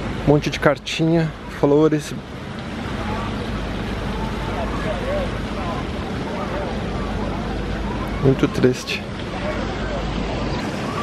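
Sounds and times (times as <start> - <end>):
faint distant voices: 0.0 - 11.0
low rumble and hiss: 0.0 - 11.0.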